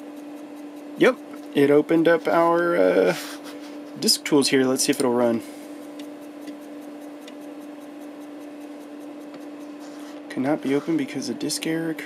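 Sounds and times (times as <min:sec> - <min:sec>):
floppy drive head ticking: 0:00.0 - 0:03.0, 0:04.3 - 0:09.8
floppy drive humming: 0:00.0 - 0:12.0.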